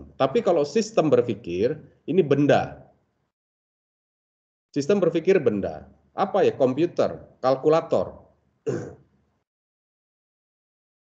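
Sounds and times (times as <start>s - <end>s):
man clearing his throat: 8.7s - 9.1s.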